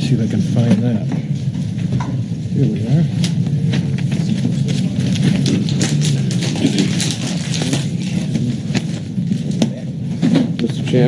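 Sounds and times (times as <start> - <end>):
low room hum: 0.0 - 11.0
papers rustling: 3.3 - 10.4.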